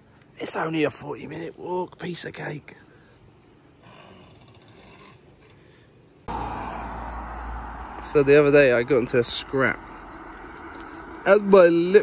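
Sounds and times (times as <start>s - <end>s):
car road noise: 6.2s - 12.0s.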